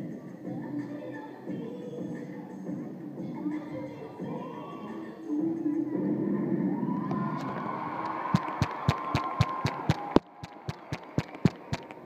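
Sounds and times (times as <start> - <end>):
crowd cheering and applauding: 6.7 - 12.0
close hands clapping: 8.0 - 12.0.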